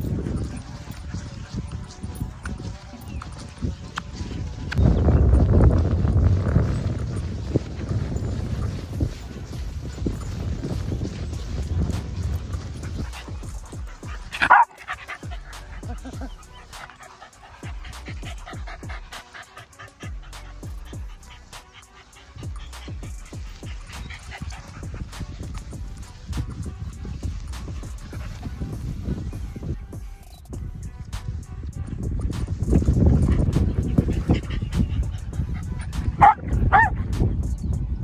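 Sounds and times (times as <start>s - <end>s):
dogs playing on grass: 0.0s - 38.0s
dog barking: 13.0s - 22.9s, 33.4s - 37.1s.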